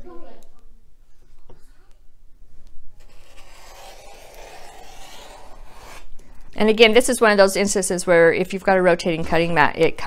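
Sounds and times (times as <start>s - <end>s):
quilting tools scraping on cutting mat: 3.0s - 6.1s.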